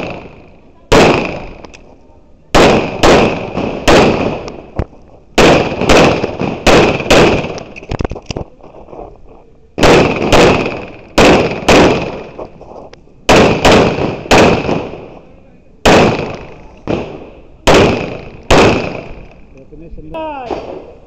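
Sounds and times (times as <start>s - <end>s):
pistol shots with echo: 0.0s - 1.7s, 2.5s - 4.8s, 5.4s - 7.8s, 9.8s - 12.4s, 13.3s - 15.2s, 15.8s - 19.4s, 20.4s - 21.0s.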